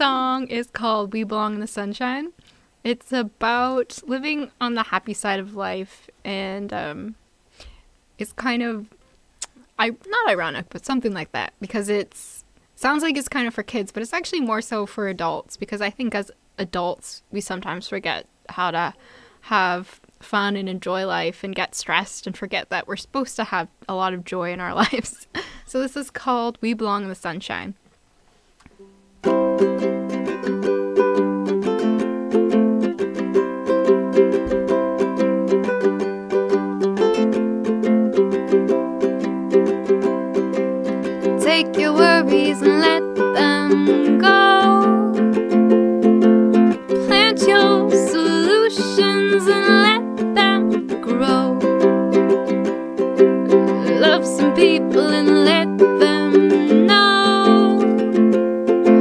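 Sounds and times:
ukulele strumming chords: 28.7 - 59.0
woman singing: 41.4 - 45.4, 47.0 - 51.9, 53.5 - 58.0.

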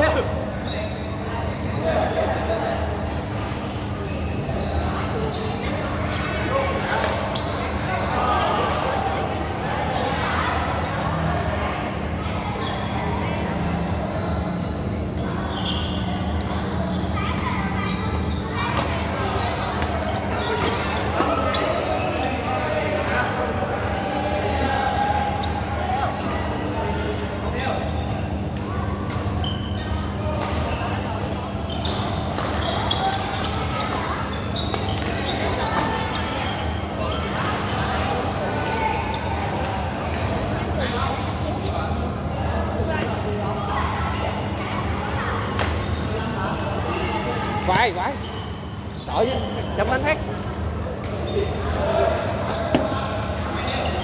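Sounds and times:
chatter of people: 0.0 - 54.0.

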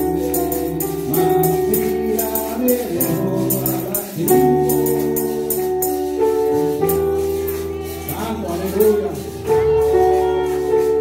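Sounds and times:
jingling percussion beat: 0.0 - 9.4
chorus singing worship song: 0.0 - 11.0
keyboard accompaniment: 0.0 - 11.0.

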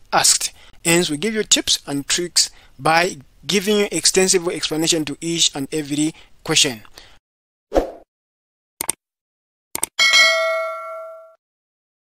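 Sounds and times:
notification bell ding: 10.0 - 11.4.

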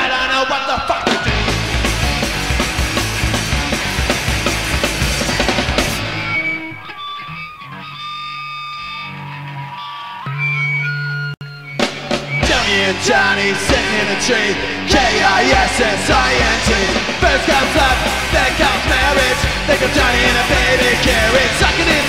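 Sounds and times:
punk rock band playing: 0.0 - 10.6, 11.5 - 22.0
guitar and bass notes ringing: 0.9 - 22.0.

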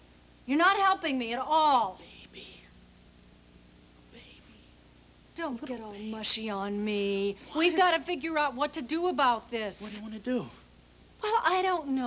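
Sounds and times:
faint steady hum: 0.0 - 12.0
person whispering: 2.0 - 2.7, 4.1 - 4.8.

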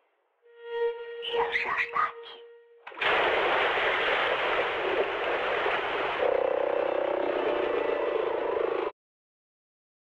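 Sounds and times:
humming tone: 0.4 - 3.0.

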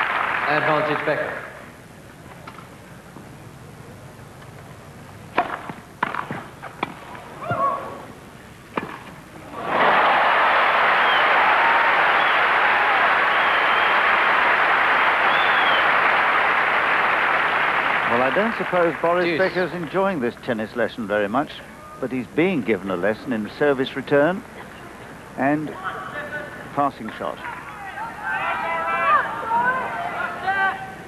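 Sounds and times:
crowd applauding and cheering: 0.0 - 1.3, 9.6 - 20.0
tennis ball struck with rackets: 5.3 - 7.0
crowd whistles: 9.6 - 16.1.

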